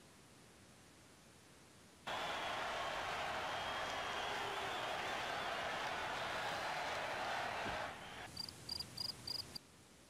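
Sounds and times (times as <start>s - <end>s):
cricket chirping: 8.3s - 9.6s.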